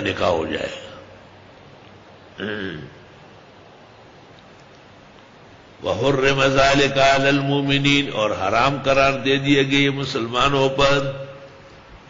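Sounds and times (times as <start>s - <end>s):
man chanting recitation: 5.8s - 11.5s.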